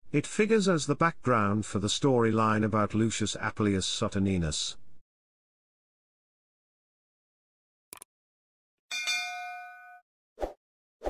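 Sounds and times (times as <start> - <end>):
notification bell ding: 8.9 - 10.0.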